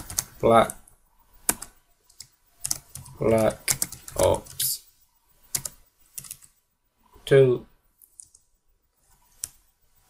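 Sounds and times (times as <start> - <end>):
computer mouse clicks: 8.0 - 9.6.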